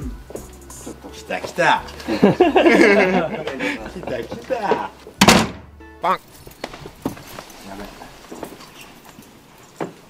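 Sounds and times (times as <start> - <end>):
heavy thunk on wooden door: 4.7 - 5.8.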